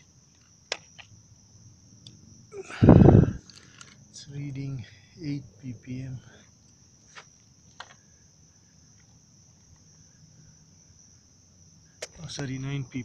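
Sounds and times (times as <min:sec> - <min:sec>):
crickets trilling: 0:00.0 - 0:13.0.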